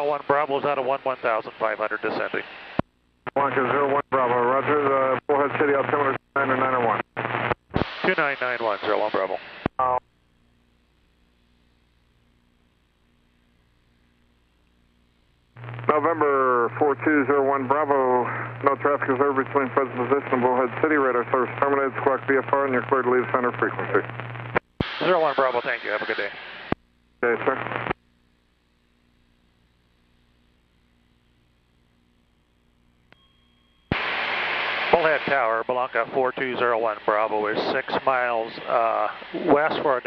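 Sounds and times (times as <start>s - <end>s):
air traffic controller speaking: 0.0s - 2.4s, 8.0s - 9.9s, 15.8s - 24.1s, 25.0s - 26.4s, 27.2s - 27.7s, 34.9s - 40.0s
radio transmission hum: 0.0s - 33.1s, 33.9s - 40.0s.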